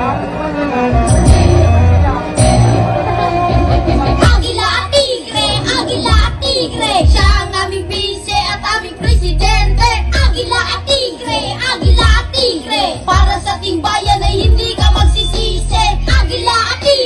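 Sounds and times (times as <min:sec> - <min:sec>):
hip-hop backing track: 0:00.0 - 0:17.0
boys rapping into microphones: 0:04.1 - 0:17.0.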